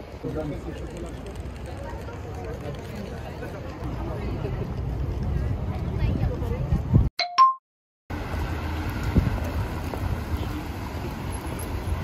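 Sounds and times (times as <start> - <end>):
wind on microphone: 4.8 - 7.1
cars passing on wet road: 8.1 - 12.0.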